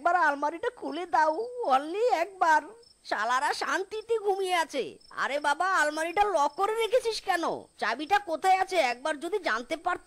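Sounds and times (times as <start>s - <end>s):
crickets chirring: 0.0s - 10.0s.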